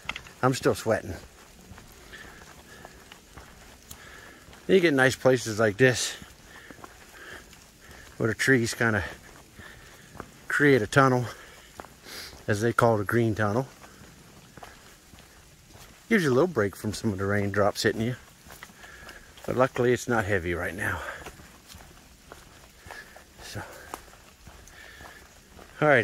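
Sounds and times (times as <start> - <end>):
footsteps on leaf-covered trail: 0.0 - 26.0
light rain patter: 0.0 - 26.0.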